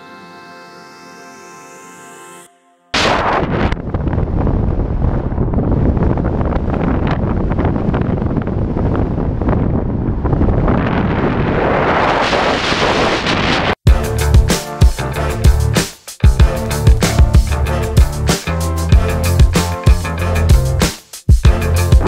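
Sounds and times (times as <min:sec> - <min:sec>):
wind buffeting microphone: 0:03.3 - 0:13.8.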